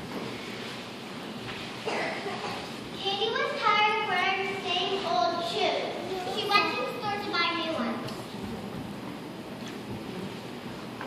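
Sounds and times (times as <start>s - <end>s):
young child speaking: 2.3s - 8.2s.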